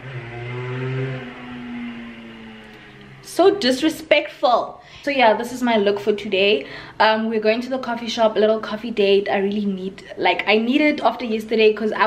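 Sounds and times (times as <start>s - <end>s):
slow sustained music notes: 0.0s - 3.9s.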